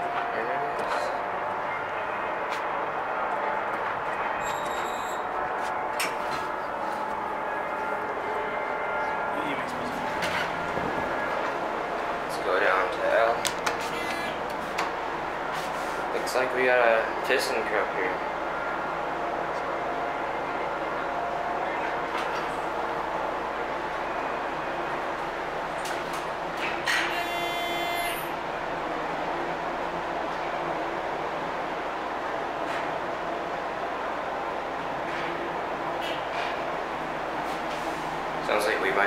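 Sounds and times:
electronic buzzer: 4.4 - 5.2.

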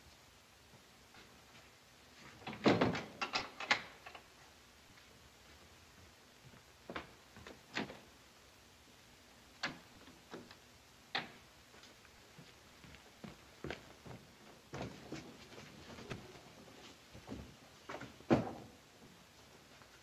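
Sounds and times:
slow uneven footsteps: 4.3 - 8.1, 9.7 - 20.0.

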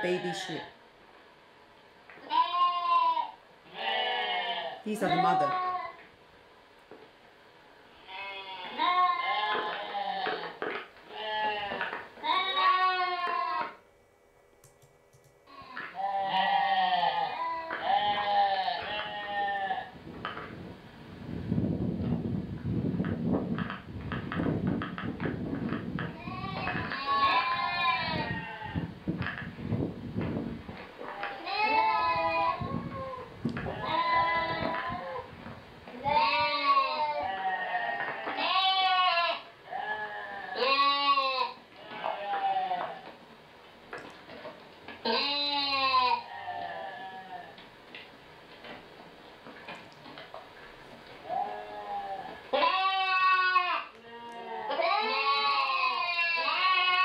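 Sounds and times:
sheep and lambs bleating: 0.0 - 0.7, 2.2 - 6.0, 8.0 - 13.8, 15.5 - 19.9, 26.1 - 28.9, 31.0 - 35.3, 35.9 - 43.0, 45.0 - 47.6, 51.2 - 57.0.

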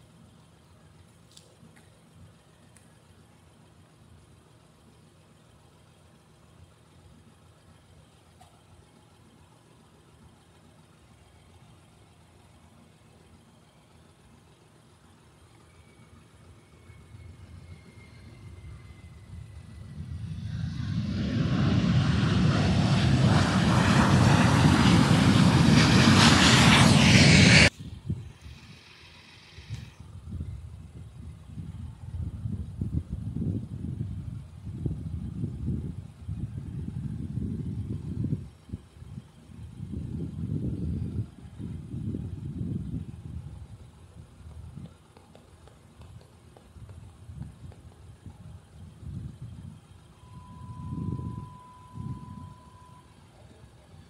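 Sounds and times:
low uneven rumble: 0.0 - 52.7
jet engine whine and roar: 14.8 - 46.2, 46.8 - 54.0.

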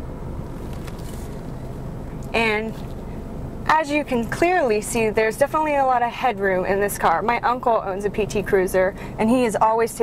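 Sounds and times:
car cabin rumble: 0.0 - 10.0.

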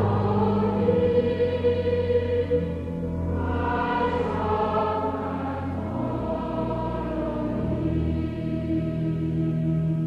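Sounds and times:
choir singing a hymn: 0.0 - 10.0.

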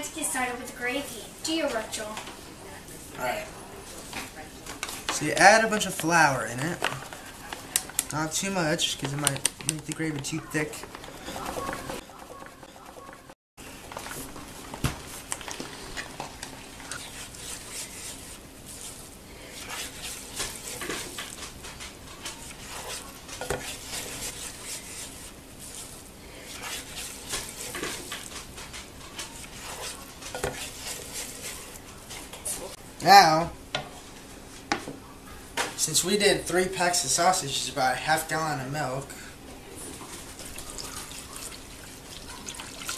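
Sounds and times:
spatula scraping a skillet: 15.7 - 32.8.

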